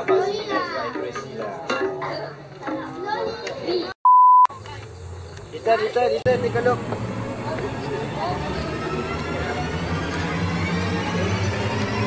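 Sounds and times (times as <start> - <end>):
children's voices: 0.0 - 4.9
electronic beep: 4.0 - 4.5.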